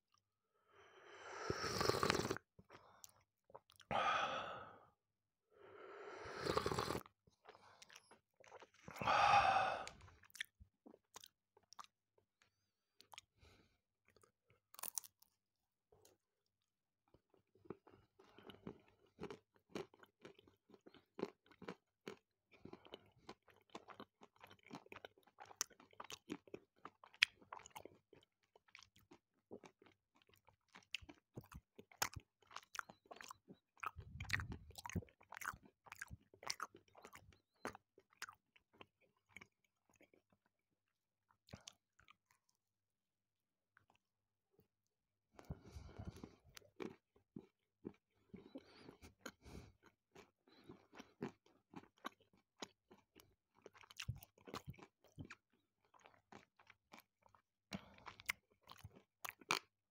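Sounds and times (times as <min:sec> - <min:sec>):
wet chewing sounds: 0:06.5 - 0:12.0, 0:17.3 - 0:40.6, 0:41.3 - 0:42.6, 0:45.4 - 0:59.8.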